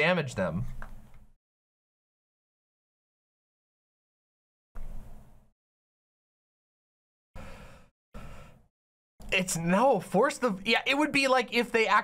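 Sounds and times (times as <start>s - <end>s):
person breathing noisily: 7.4s - 8.7s.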